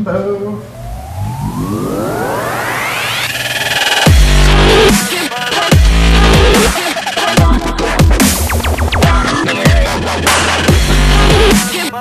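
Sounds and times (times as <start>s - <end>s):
rising synthesizer riser: 0.6s - 7.1s
dubstep drop: 0.7s - 11.9s.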